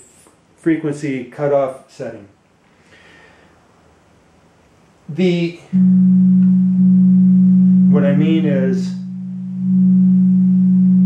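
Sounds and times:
low synthesizer sine tone: 5.7 - 11.0.

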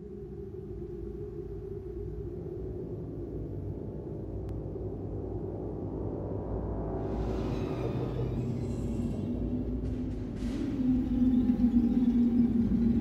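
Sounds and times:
low rumbling drone: 0.0 - 13.0.

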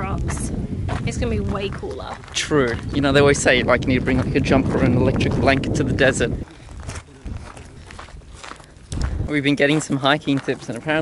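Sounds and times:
footsteps on gravel: 0.1 - 11.0.

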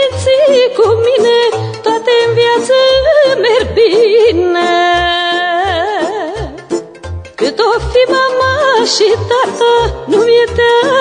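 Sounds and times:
band accompaniment with bass: 0.0 - 11.0
woman singing a folk song: 0.0 - 11.0.

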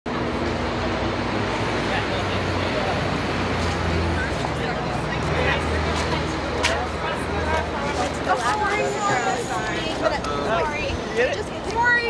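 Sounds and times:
traffic: 0.1 - 12.0
people's voices: 1.4 - 12.0.

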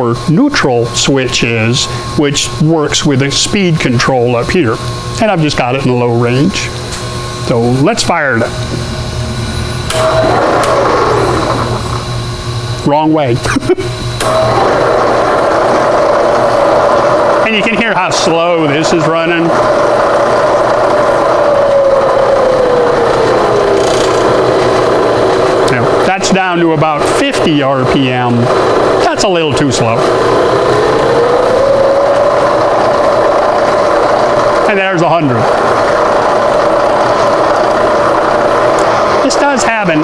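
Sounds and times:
milling machine running: 0.0 - 40.0
phase converter hum: 0.0 - 40.0.

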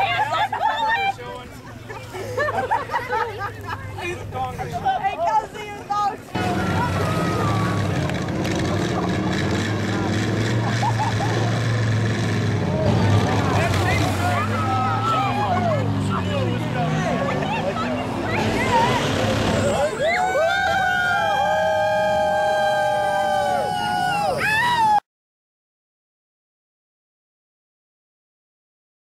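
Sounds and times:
crowd voices shouting: 4.7 - 25.0
vehicle engine running: 6.3 - 20.4.

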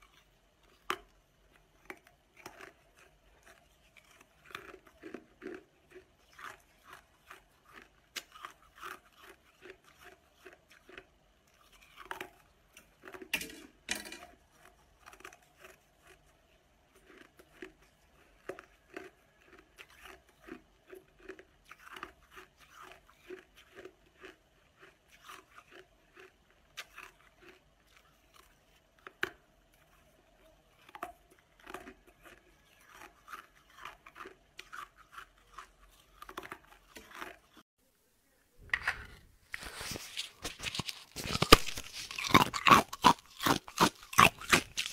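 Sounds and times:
ice being chewed: 0.0 - 37.6, 39.5 - 44.9.

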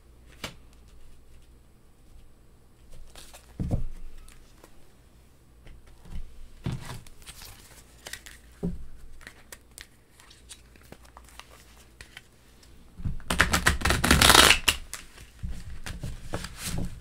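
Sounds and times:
cards being shuffled: 2.9 - 4.8, 6.9 - 12.3, 13.2 - 17.0.

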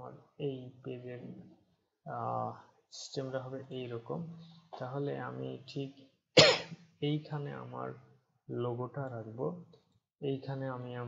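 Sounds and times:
man speaking: 0.0 - 6.0, 7.0 - 11.0
man coughing: 6.4 - 6.8.

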